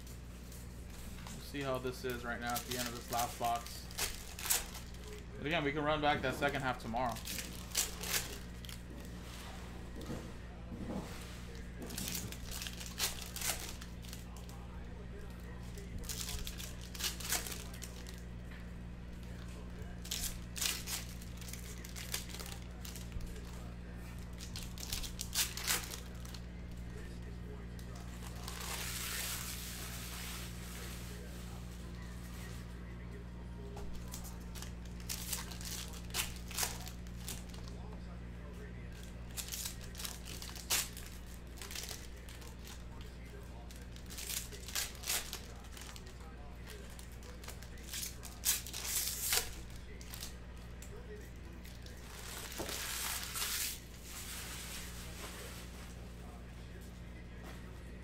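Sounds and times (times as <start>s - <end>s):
steady low hum: 0.0s - 58.0s
foil wrappers tearing and crinkling: 1.2s - 8.8s, 11.5s - 18.2s, 19.2s - 27.2s, 27.8s - 31.3s, 33.9s - 37.9s, 38.8s - 55.5s.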